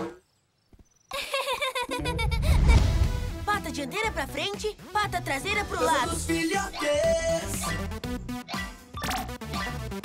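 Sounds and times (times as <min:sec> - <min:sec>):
cartoon voices laughing: 0:01.1 - 0:02.9.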